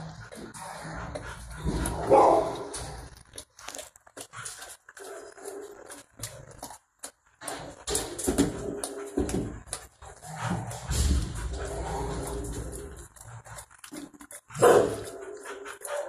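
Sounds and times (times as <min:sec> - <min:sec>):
dog barking: 0:02.0 - 0:02.7, 0:14.6 - 0:16.0.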